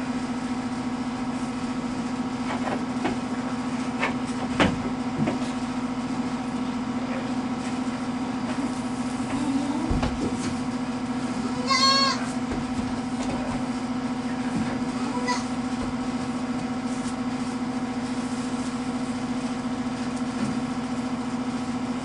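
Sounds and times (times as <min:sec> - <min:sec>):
goat bleating: 0:11.4 - 0:12.4, 0:15.0 - 0:15.5.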